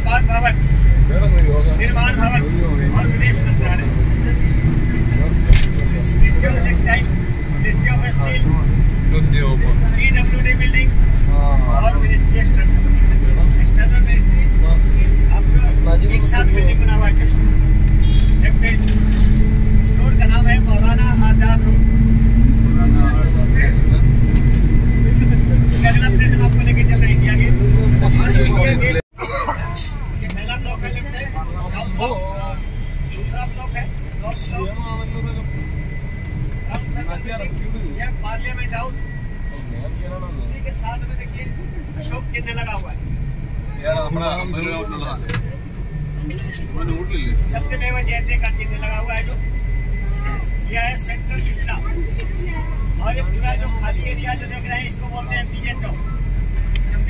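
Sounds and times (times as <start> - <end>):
people talking: 0.0 - 17.5, 18.1 - 35.6, 36.6 - 43.0, 43.7 - 49.4, 50.0 - 57.0
vehicle engine and road rumble: 0.0 - 57.0.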